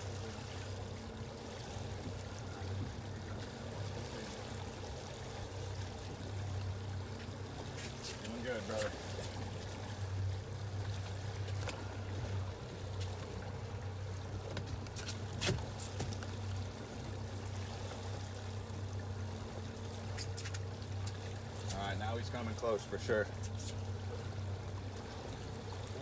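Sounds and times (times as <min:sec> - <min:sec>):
outboard motor running: 0:00.0 - 0:26.0
water washing along hull: 0:00.0 - 0:26.0.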